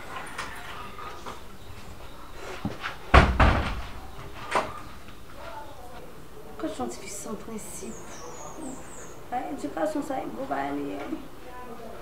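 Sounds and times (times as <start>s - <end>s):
wooden door slamming: 3.1s - 4.8s.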